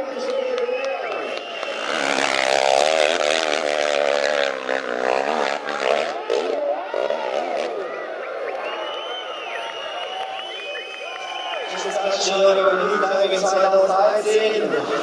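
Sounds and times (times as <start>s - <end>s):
motorcycle engine revving: 1.2s - 8.3s.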